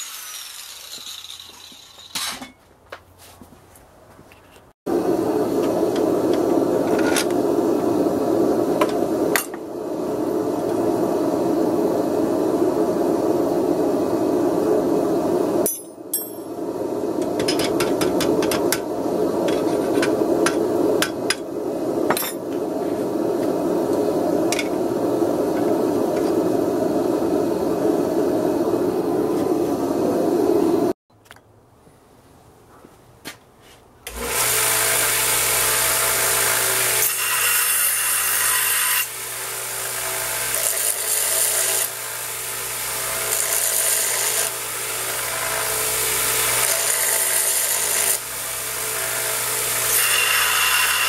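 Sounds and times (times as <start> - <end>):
steady rushing noise: 4.9 - 31.0
hammer striking steel: 15.6 - 16.5.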